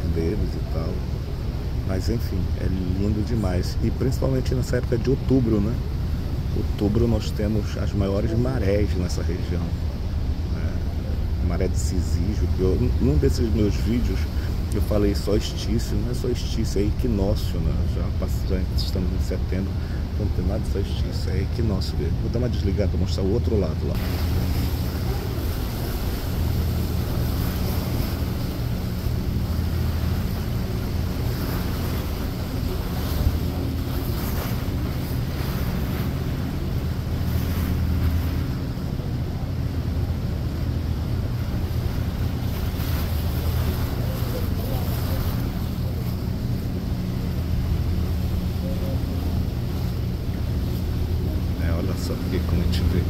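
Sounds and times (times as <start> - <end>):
choppy water wash: 0.0 - 53.0
ferry engines droning: 0.0 - 53.0.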